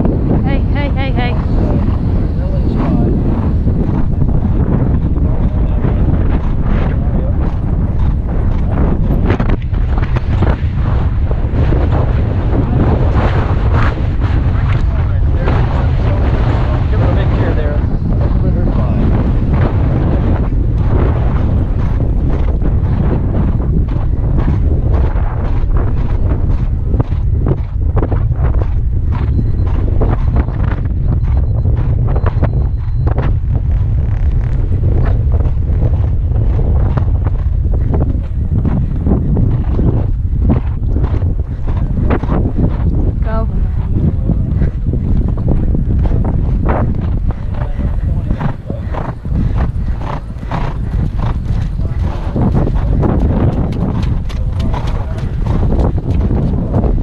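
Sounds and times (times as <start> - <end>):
horse hoofbeats on sand: 0.0 - 57.0
wind rumbling on microphone: 0.0 - 57.0.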